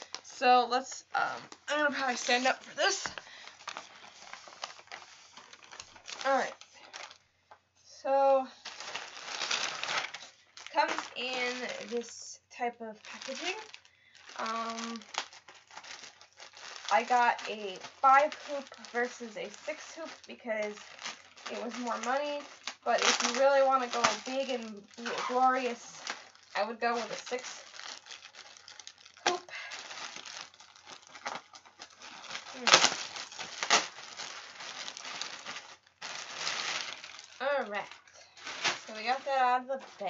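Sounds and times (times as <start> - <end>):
plastic bag crinkling: 0.0 - 7.3, 8.2 - 12.3, 12.9 - 40.0.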